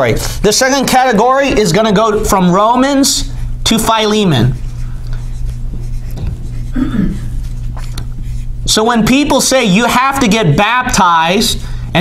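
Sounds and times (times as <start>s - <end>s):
low electrical hum: 0.0s - 12.0s
marker writing on whiteboard: 3.8s - 8.8s.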